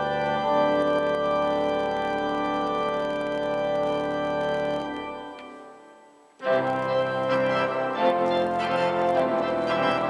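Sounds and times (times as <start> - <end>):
organ playing sustained chords: 0.0 - 10.0.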